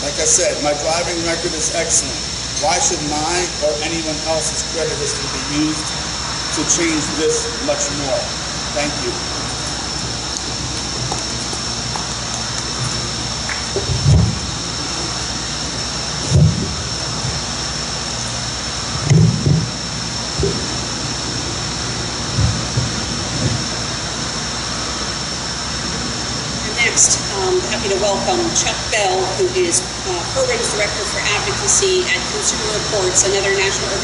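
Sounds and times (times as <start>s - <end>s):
background hiss: 0.0s - 34.0s
faint high whine: 0.0s - 34.0s.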